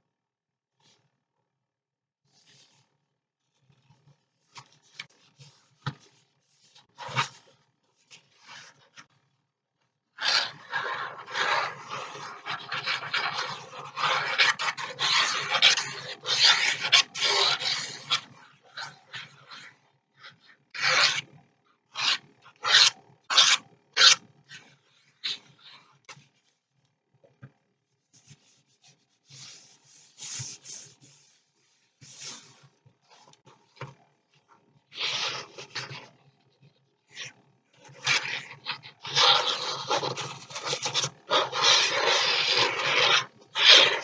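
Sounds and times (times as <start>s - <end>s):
paper being rubbed by hand: 2.3s - 2.9s, 4.4s - 9.1s, 10.2s - 21.3s, 21.9s - 26.0s, 28.0s - 33.6s, 34.9s - 36.1s, 37.1s - 44.0s.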